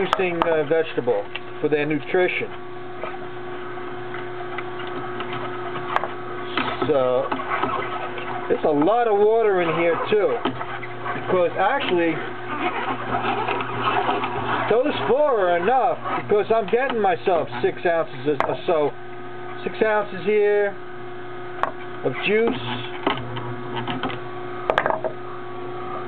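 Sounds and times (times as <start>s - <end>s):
juicer motor humming: 0.0s - 26.0s
auger crushing vegetables crackling: 2.5s - 18.9s.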